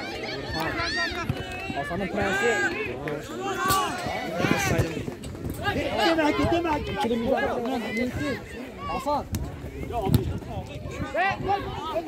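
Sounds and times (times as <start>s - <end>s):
people shouting: 0.0s - 4.9s, 5.6s - 9.2s.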